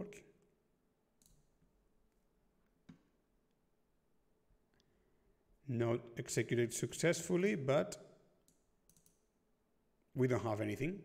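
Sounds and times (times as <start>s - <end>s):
computer mouse clicks: 1.2s - 1.5s, 8.5s - 9.2s.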